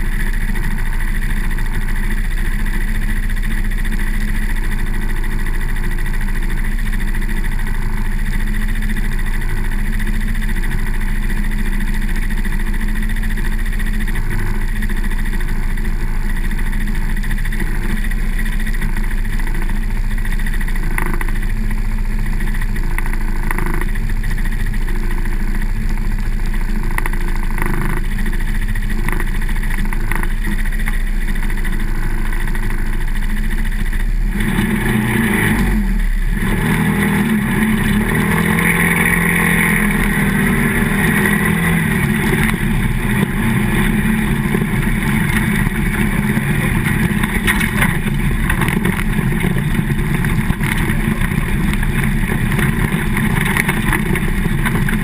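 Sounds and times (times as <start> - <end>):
atv engine idling: 0.0 - 55.0.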